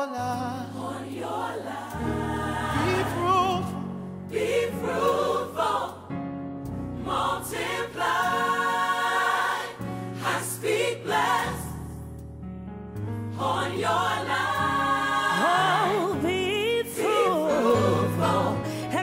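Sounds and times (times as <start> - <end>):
choir singing gospel: 0.1 - 12.1, 13.2 - 19.0
low accompaniment notes: 2.1 - 4.7.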